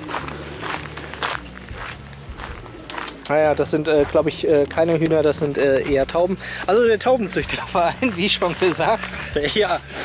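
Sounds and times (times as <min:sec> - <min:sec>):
footsteps of person walking: 0:00.0 - 0:09.8.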